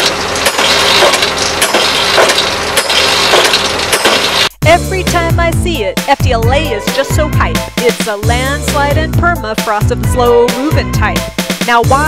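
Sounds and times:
drill rig hammer striking: 0:00.0 - 0:04.5
rig engine running: 0:00.0 - 0:12.0.

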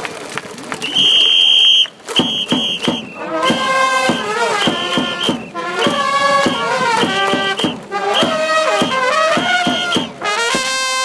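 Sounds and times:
crowd chatter: 0:00.0 - 0:10.9
high whistle blast: 0:00.9 - 0:10.2.

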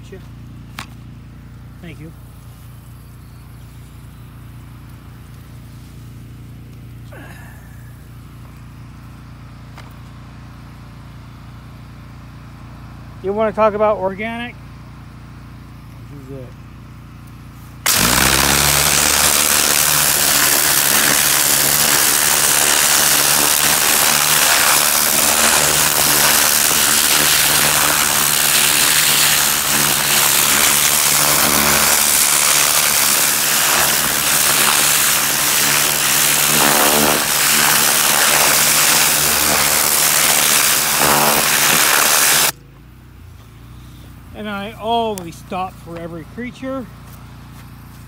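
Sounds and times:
pump motor hum: 0:17.4 - 0:42.6
pressure washer water jet hissing: 0:17.8 - 0:42.5.

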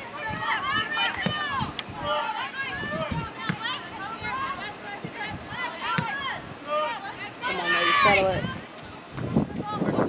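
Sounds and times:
people talking: 0:00.0 - 0:10.0.

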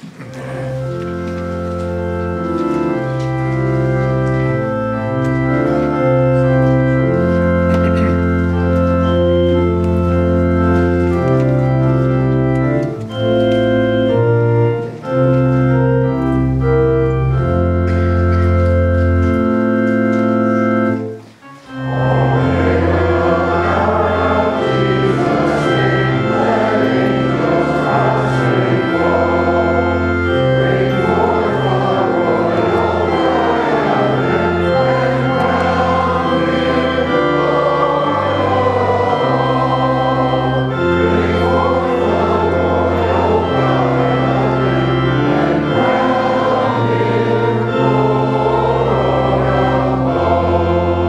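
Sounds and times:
church organ: 0:00.0 - 0:51.0
congregation singing a hymn: 0:00.0 - 0:51.0.

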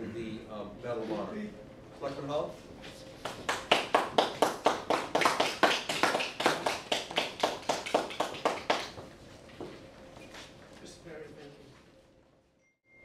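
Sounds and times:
small group applauding: 0:03.2 - 0:09.1.

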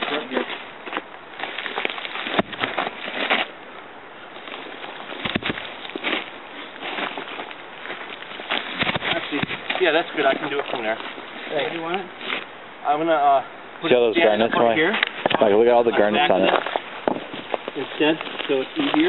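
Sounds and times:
dry leaves rustling and crackling: 0:00.0 - 0:03.6, 0:04.2 - 0:12.5, 0:16.0 - 0:19.0
voices: 0:08.8 - 0:19.0.

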